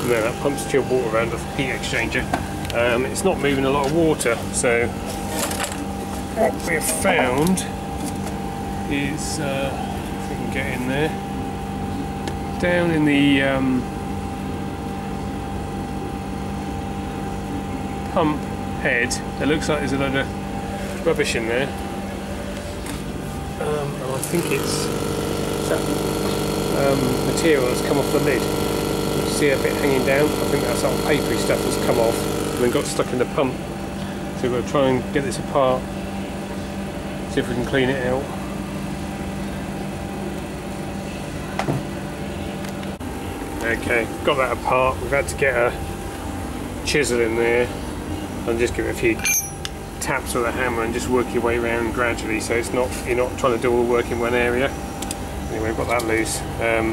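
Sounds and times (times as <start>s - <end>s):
machinery hum: 0.0s - 56.9s
thin steady whine: 0.0s - 56.9s.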